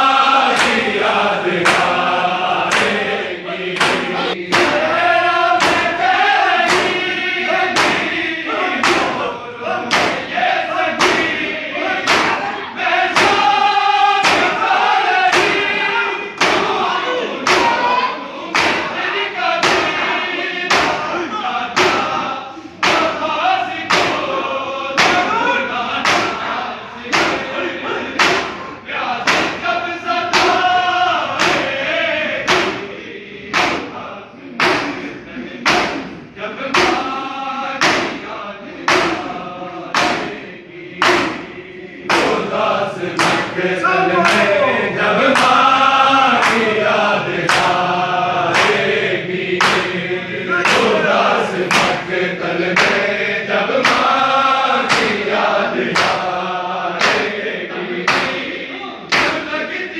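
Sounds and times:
many voices singing: 0.0 - 59.9
men chanting: 0.0 - 59.9
men slapping chests in unison: 0.0 - 59.9
hands slapping chests: 0.4 - 1.0, 1.6 - 3.1, 3.8 - 5.0, 5.6 - 7.1, 7.7 - 8.2, 8.8 - 9.2, 9.8 - 10.4, 11.0 - 12.5, 14.2 - 15.7, 17.4 - 19.0, 26.0 - 26.5, 32.4 - 32.9, 33.5 - 34.0, 35.6 - 37.2, 37.8 - 38.2, 39.9 - 40.4, 41.0 - 41.5, 42.1 - 42.5, 43.1 - 43.6, 44.2 - 44.6, 45.2 - 46.8, 47.4 - 47.9, 48.5 - 49.0, 49.6 - 50.0, 50.6 - 52.1, 52.8 - 53.1, 53.7 - 54.2, 54.8 - 56.4, 57.0 - 57.4, 58.1 - 58.5, 59.1 - 59.4.

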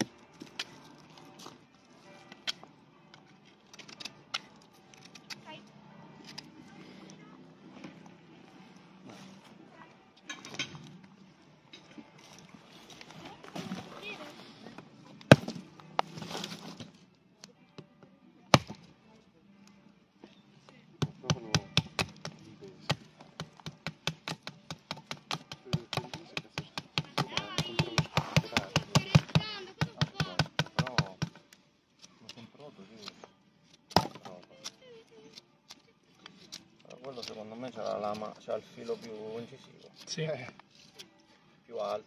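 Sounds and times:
knife chopping dry branches: 15.2 - 16.6, 18.5 - 18.8, 21.0 - 31.4.

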